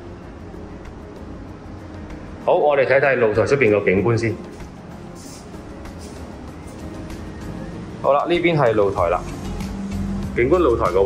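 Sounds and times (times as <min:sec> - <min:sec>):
background music: 0:00.0 - 0:11.0
distant road traffic hum: 0:00.0 - 0:11.0.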